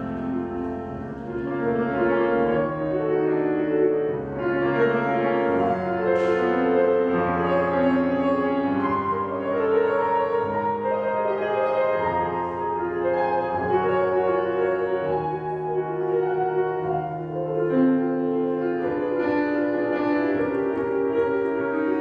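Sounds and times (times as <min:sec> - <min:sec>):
slow classical piano piece: 0:00.0 - 0:22.0.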